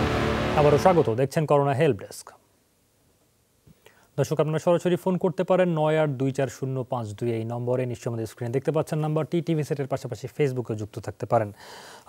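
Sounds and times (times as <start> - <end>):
man speaking: 0.5 - 2.4, 4.2 - 11.6.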